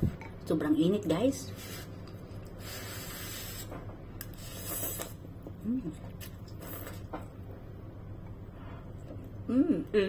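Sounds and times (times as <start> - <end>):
person slurping noodles: 4.3 - 5.2.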